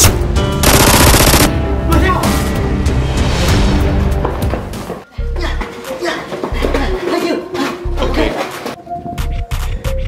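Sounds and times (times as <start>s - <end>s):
background music: 0.0s - 10.0s
automatic gunfire: 0.6s - 1.5s.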